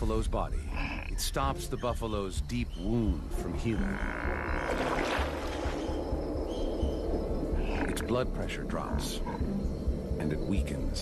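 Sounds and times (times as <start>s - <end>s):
frogs croaking in chorus: 0.0s - 11.0s
low background music: 0.0s - 11.0s.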